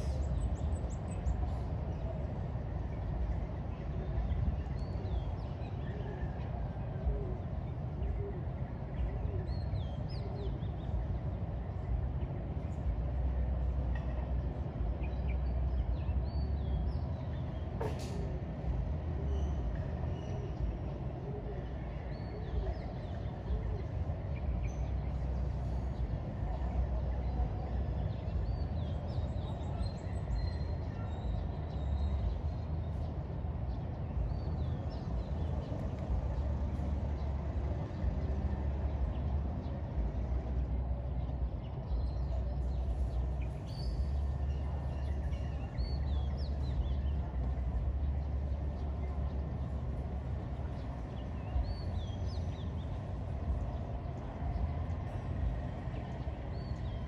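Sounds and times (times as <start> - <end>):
distant city traffic: 0.0 - 57.0
low outdoor rumble: 0.0 - 57.0.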